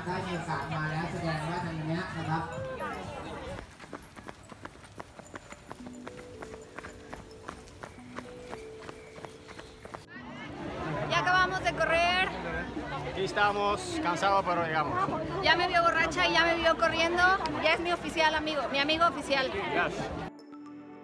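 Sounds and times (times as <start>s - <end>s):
running footsteps on road: 0.1s - 10.1s.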